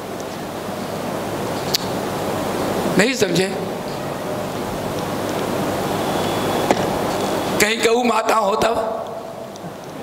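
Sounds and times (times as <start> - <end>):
steady rushing noise: 0.0 - 7.7.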